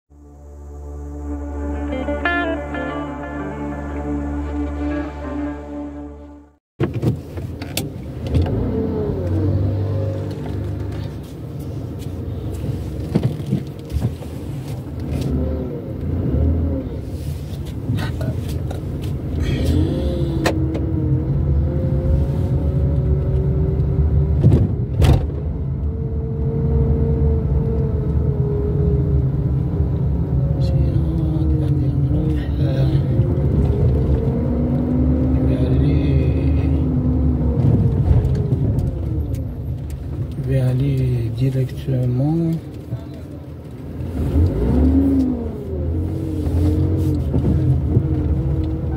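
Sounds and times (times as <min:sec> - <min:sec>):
rising and falling tones: 0:00.1 - 0:06.6
car engine and road rumble: 0:00.1 - 0:48.9.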